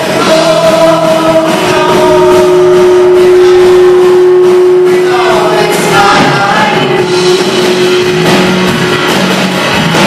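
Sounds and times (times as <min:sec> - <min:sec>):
live band music: 0:00.0 - 0:10.0
long held note: 0:00.6 - 0:08.8.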